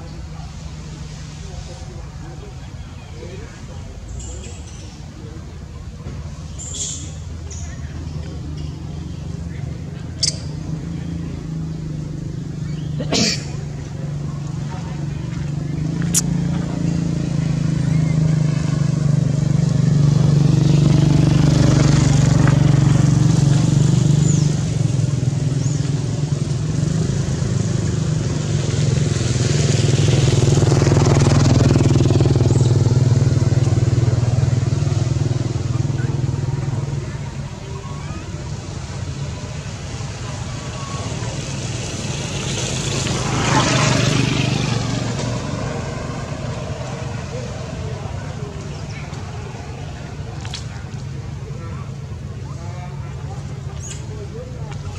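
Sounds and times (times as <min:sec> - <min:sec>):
faint voices: 0:00.0 - 0:54.9.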